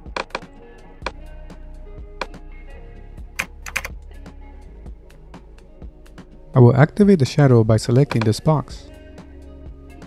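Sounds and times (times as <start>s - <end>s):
background music: 0.0s - 10.0s
typing on computer keyboard: 3.4s - 3.9s.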